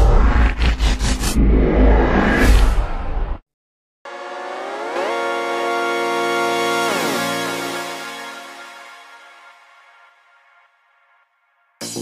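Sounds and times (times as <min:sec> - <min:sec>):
whoosh: 0:00.0 - 0:03.4
synth chord sliding up: 0:04.1 - 0:10.7.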